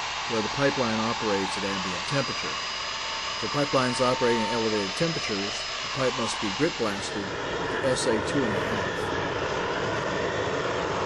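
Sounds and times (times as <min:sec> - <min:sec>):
loud rushing roar of equipment: 0:00.0 - 0:11.0.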